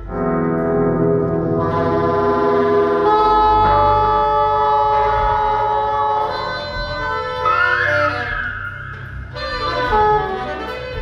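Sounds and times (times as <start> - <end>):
steady low bass: 0.0 - 11.0.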